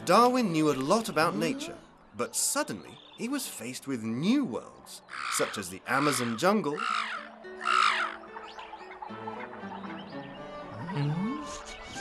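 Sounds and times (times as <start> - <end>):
soft background music: 0.0 - 12.0
bird croaking squawk: 5.0 - 11.6.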